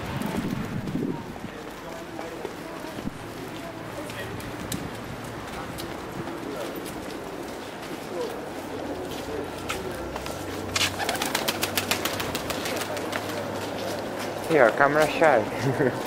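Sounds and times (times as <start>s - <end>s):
street noise: 0.0s - 16.0s
pigeon wings flapping: 10.8s - 13.4s.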